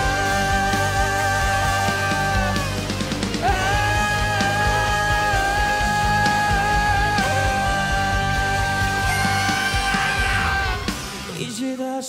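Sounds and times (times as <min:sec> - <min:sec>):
live rock band playing loud: 0:00.0 - 0:11.4.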